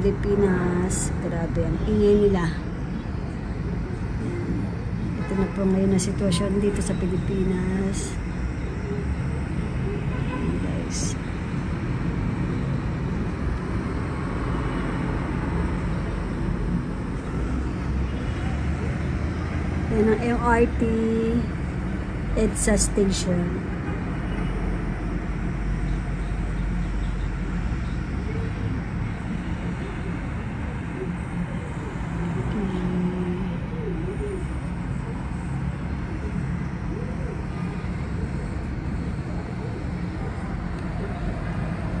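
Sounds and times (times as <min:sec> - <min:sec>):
city traffic rumble: 0:00.0 - 0:42.0
faint voices: 0:24.3 - 0:42.0.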